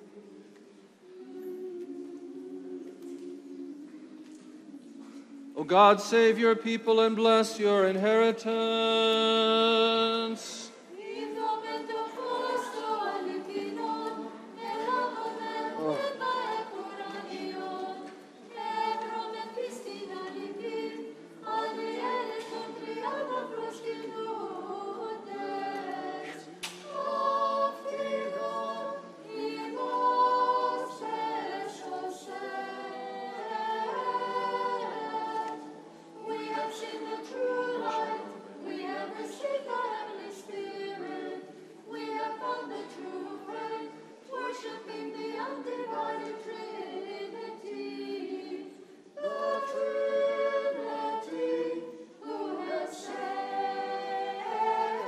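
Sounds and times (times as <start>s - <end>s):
church choir singing a hymn: 0.0s - 55.0s.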